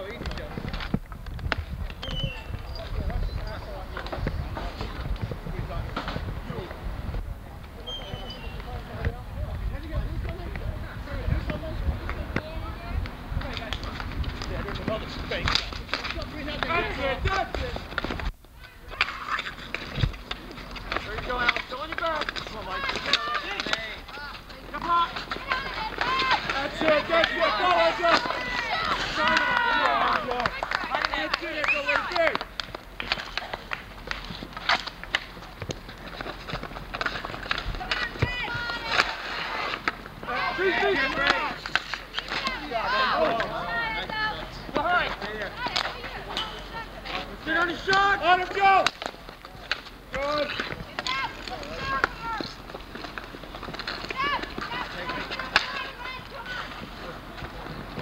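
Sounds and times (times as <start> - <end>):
people calling and shouting: 0.0 - 58.0
hockey sticks knocking ball: 11.4 - 18.3, 18.9 - 58.0.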